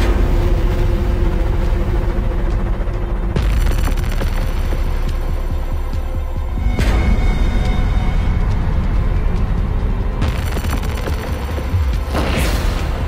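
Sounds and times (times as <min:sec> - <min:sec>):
deep rumbling drone: 0:00.0 - 0:13.0.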